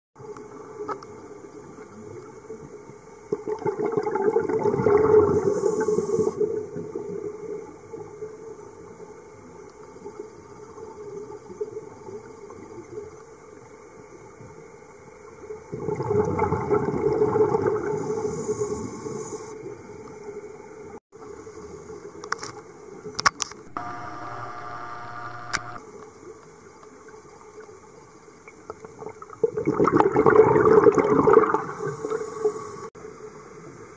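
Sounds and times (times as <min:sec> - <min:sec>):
diver regulator bubbles rushing: 0:03.4 - 0:05.5, 0:15.8 - 0:18.0, 0:29.4 - 0:31.8
sharp clicks: 0:23.2 - 0:25.8
brief buzzing tone: 0:23.7 - 0:25.8
steady low hiss: 0:23.7 - 0:25.8.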